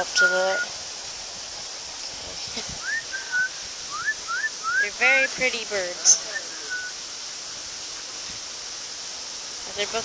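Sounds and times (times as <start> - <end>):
steady background hiss: 0.0 - 10.0
short whistled notes: 2.8 - 4.8.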